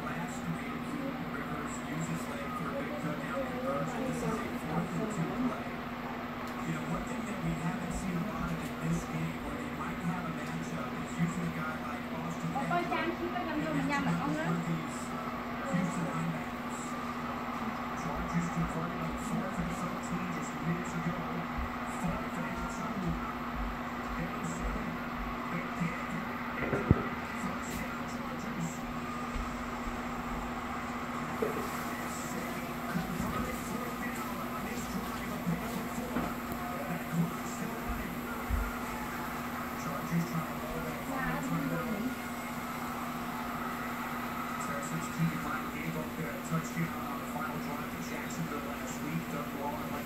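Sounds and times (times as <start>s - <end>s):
steady low hum: 0.0s - 50.0s
television voices: 0.0s - 50.0s.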